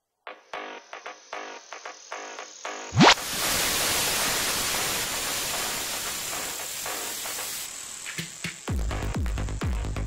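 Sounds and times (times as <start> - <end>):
television static hiss: 2.8 - 8.8.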